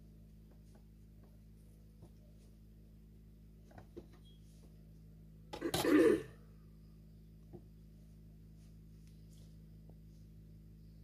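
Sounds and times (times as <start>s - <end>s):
person clearing throat with cough: 5.5s - 6.4s.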